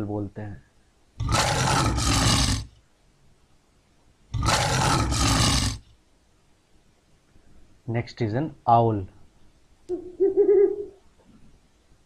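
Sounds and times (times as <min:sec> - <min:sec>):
lion roaring: 0:01.2 - 0:02.7, 0:04.4 - 0:05.8.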